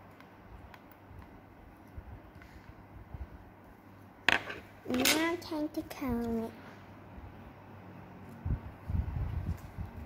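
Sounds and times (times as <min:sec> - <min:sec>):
child's voice: 0:04.9 - 0:06.6.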